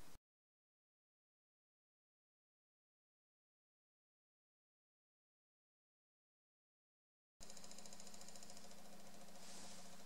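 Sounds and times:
small motor humming: 7.4 - 10.0.

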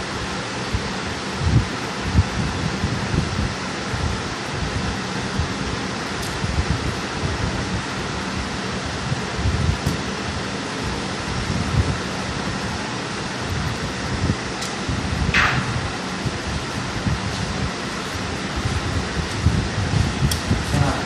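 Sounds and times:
fan-like rushing noise: 0.0 - 21.0
hands fitting wire terminals: 6.2 - 6.4, 14.6 - 15.6, 20.2 - 20.9.

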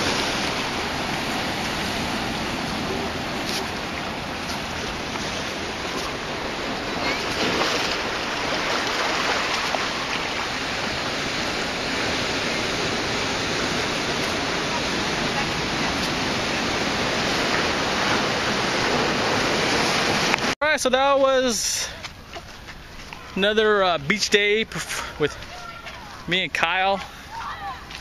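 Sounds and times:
ocean surf washing over rocks: 0.0 - 21.8.

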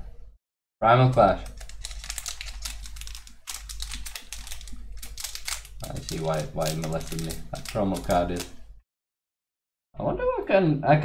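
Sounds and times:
foil wrapper crinkling: 1.0 - 8.6.

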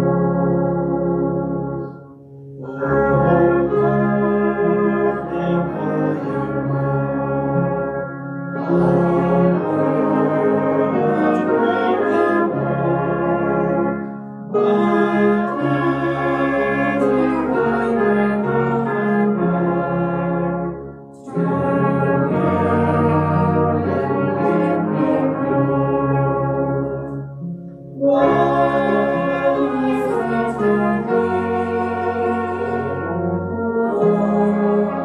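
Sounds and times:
brass band playing hymn tune: 0.0 - 35.0.

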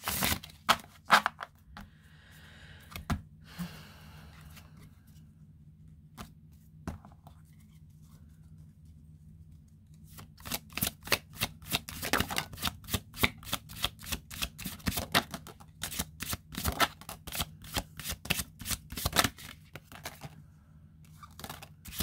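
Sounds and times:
cards being shuffled: 0.0 - 1.6, 9.9 - 20.4, 21.1 - 22.0.

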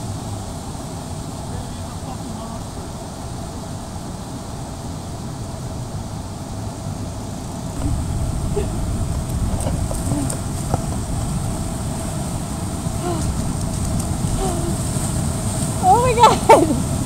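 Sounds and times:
waves washing up beach: 0.0 - 17.0
wind on microphone: 0.0 - 17.0
faint voices: 7.8 - 10.9, 13.0 - 13.5, 14.3 - 14.9, 15.8 - 17.0.

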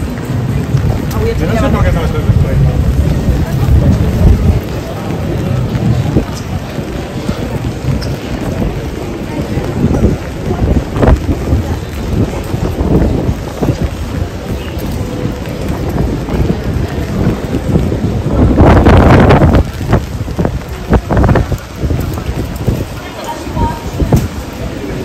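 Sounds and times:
rain on street: 0.0 - 25.0
wind buffeting microphone: 0.0 - 25.0.

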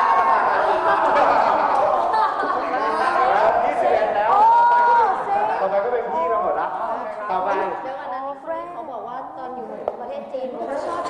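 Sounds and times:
overlapping chatter: 0.0 - 8.2.

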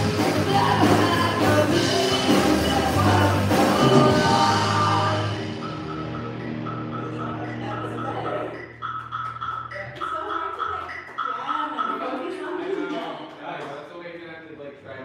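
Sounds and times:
band playing: 0.0 - 13.0
held low bass note: 4.2 - 8.9
men talking: 11.6 - 15.0.

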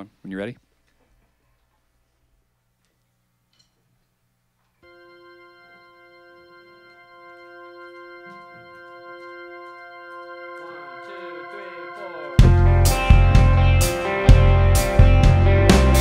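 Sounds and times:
held organ chord: 4.8 - 16.0.

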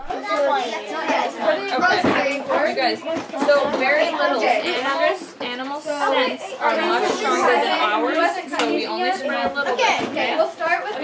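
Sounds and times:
children chattering: 0.0 - 11.0.

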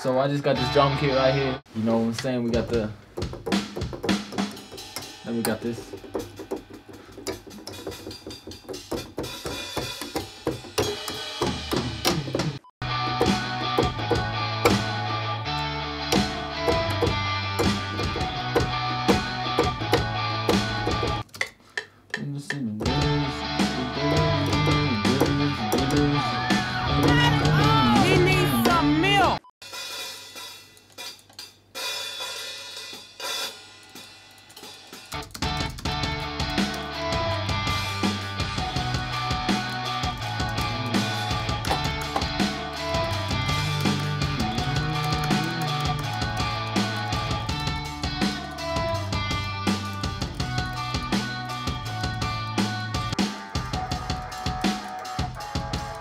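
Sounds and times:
drum kit with snare and cymbals: 1.8 - 21.3, 22.8 - 56.0
pop-punk beat: 2.5 - 21.3, 22.8 - 56.0
rock guitar melody: 12.8 - 21.2, 22.9 - 29.4, 35.2 - 56.0.

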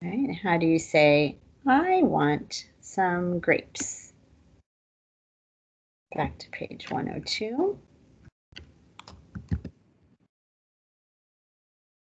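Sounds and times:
computer keyboard taps: 8.6 - 9.8.

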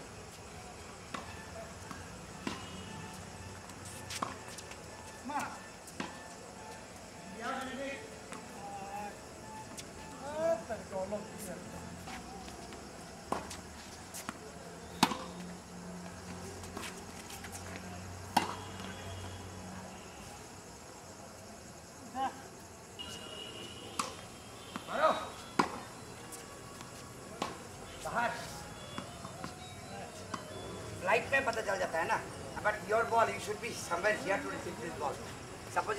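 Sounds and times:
tennis ball bouncing on court: 2.4 - 2.7, 15.0 - 15.3, 18.3 - 18.6, 25.6 - 25.8
racket hitting tennis ball: 15.0 - 15.2, 25.6 - 25.8.

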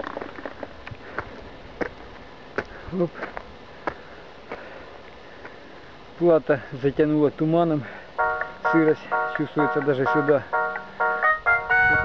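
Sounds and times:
footsteps on stony trail: 0.0 - 5.6
faint steady hiss: 0.0 - 11.9.

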